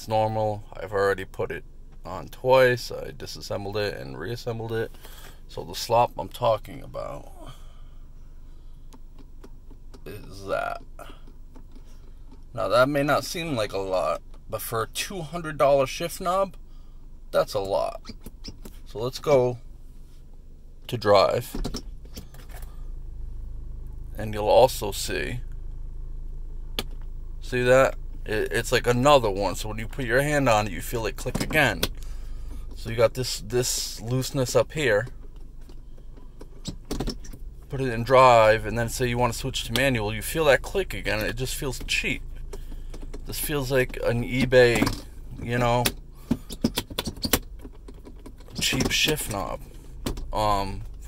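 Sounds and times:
steady low hum: 0.0s - 51.0s
gear selector clicks: 41.2s - 51.0s.

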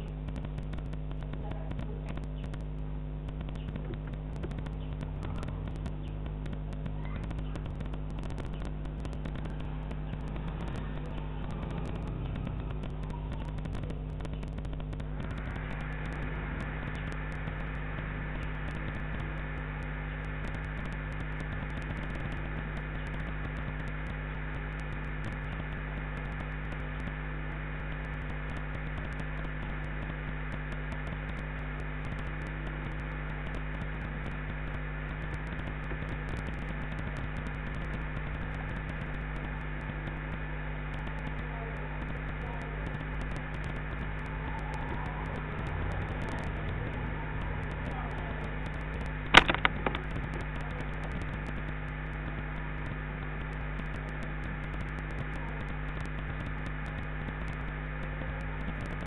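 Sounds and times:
electrical hum: 0.0s - 59.0s.

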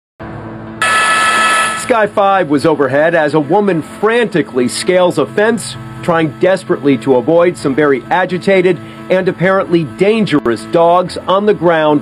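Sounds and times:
news sting chord: 0.8s - 2.6s
newsreader speaking: 1.8s - 3.0s.

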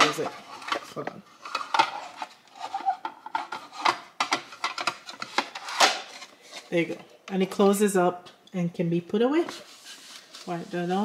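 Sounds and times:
plastic trays clicking and knocking: 0.0s - 6.2s.

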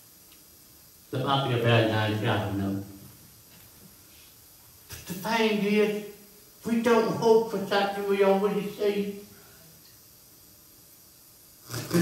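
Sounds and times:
faint room hiss: 0.0s - 12.0s
man speaking: 1.1s - 3.0s, 4.9s - 9.3s, 11.7s - 12.0s.

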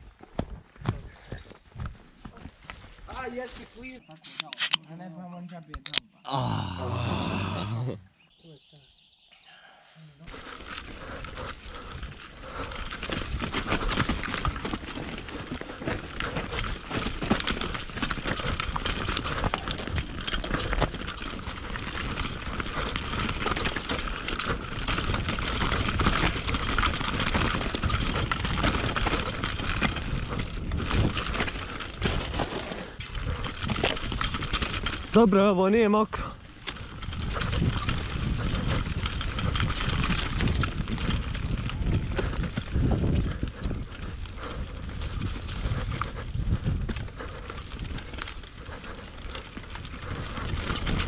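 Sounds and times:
tyres rumbling on dirt: 10.3s - 51.0s
bike knocks and rattles: 12.8s - 35.2s.

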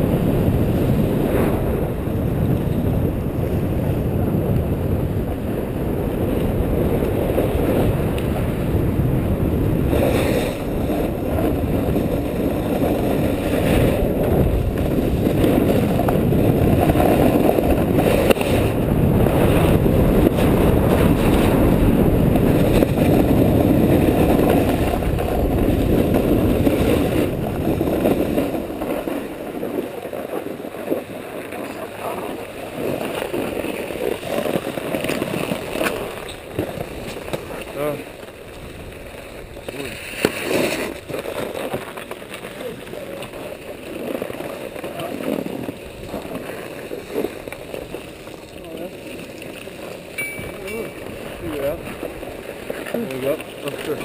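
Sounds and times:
wind rushing over microphone: 0.0s - 54.0s
skis running on packed snow: 0.2s - 54.0s
skis and poles clicking: 9.9s - 18.7s, 19.4s - 54.0s.

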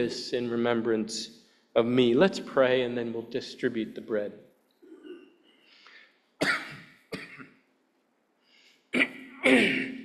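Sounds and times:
man coughing: 4.8s - 5.5s, 6.4s - 7.6s, 8.9s - 10.0s
faint breathing: 5.4s - 6.3s, 8.4s - 8.9s.

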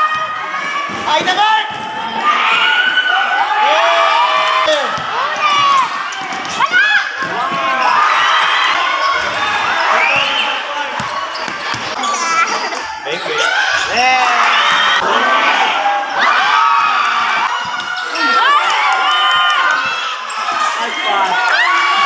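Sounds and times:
spectators shouting and cheering: 0.0s - 22.0s.

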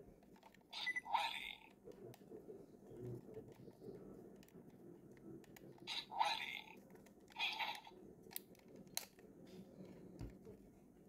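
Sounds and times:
sharp small plastic clicks: 8.2s - 9.2s.

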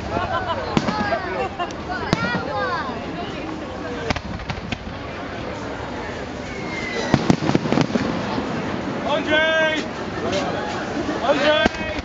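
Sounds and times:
crowd chatter: 0.0s - 12.0s
fireworks bangs: 0.0s - 12.0s.

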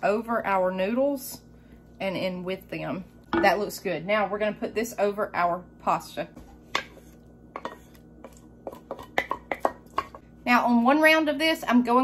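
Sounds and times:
wooden spoon scraping a pot: 6.4s - 10.2s.

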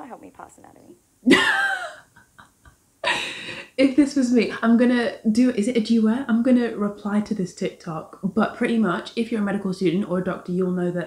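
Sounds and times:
woman laughing loudly: 1.3s - 3.7s.

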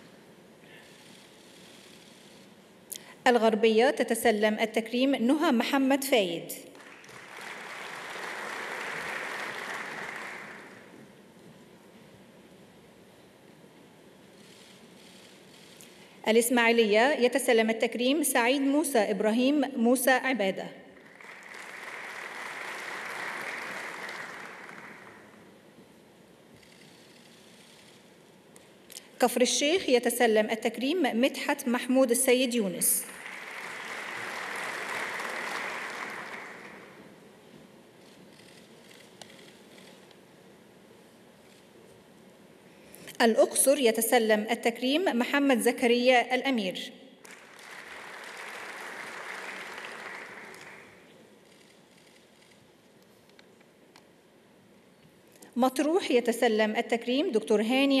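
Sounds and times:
audience applauding: 6.7s - 11.0s, 21.0s - 25.5s, 33.1s - 37.1s, 47.2s - 51.1s.

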